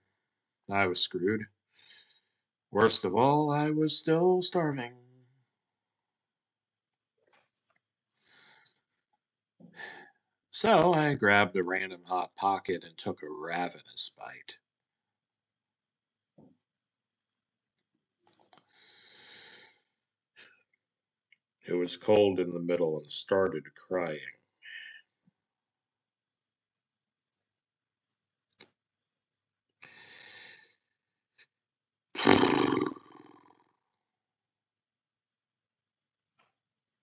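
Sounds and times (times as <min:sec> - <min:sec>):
faint breath: 0:01.7 - 0:02.5, 0:08.2 - 0:08.9, 0:09.6 - 0:10.2, 0:18.6 - 0:20.6, 0:29.8 - 0:30.9.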